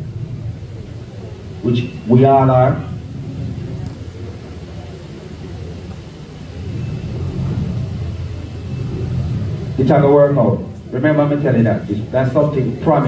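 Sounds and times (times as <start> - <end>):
low rumble: 0.0 - 12.7.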